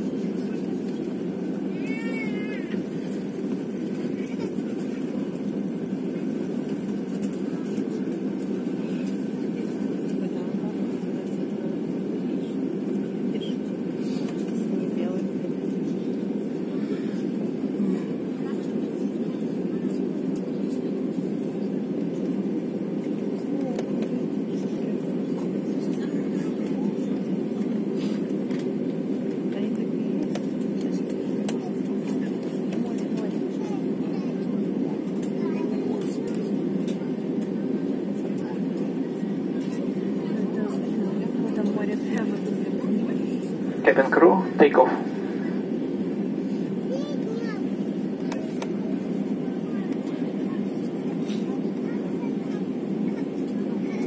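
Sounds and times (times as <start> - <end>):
jet engines humming: 0.0 - 54.0.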